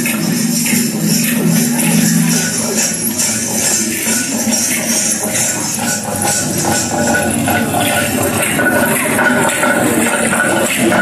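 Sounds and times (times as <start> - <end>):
dance music: 0.0 - 11.0
jingling rattling percussion: 0.0 - 11.0
people talking in a hall: 0.0 - 11.0.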